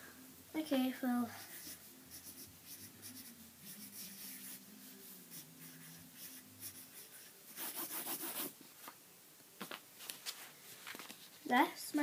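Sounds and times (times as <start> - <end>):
pencil scratching on paper: 1.2 - 8.6.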